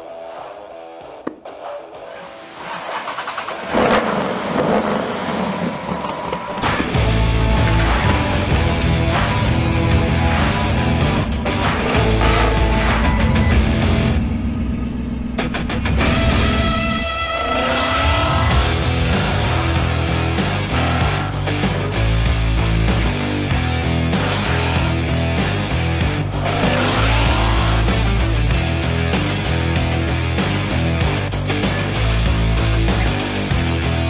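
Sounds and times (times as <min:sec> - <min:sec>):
car engine starting and running: 0:02.1 - 0:34.0
loud music: 0:06.6 - 0:34.0
heavy low sound: 0:06.9 - 0:17.5.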